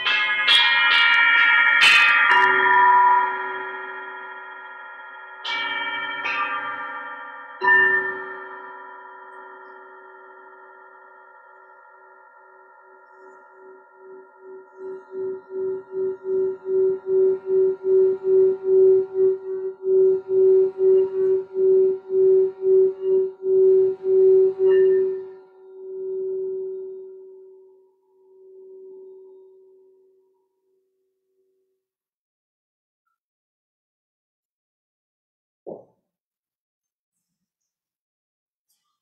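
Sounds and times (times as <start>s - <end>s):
singing bowl humming: 2.4s - 30.4s.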